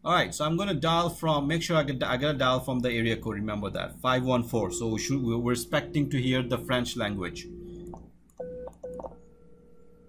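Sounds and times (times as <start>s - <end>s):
steady telephone ringing tone: 4.2s - 10.0s
short beeps: 4.4s - 9.3s.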